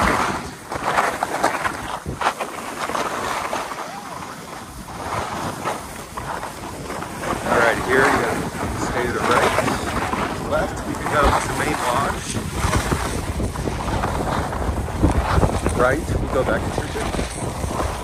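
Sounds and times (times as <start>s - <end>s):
skis scraping over snow: 0.0s - 18.0s
wind rushing over microphone: 0.0s - 18.0s.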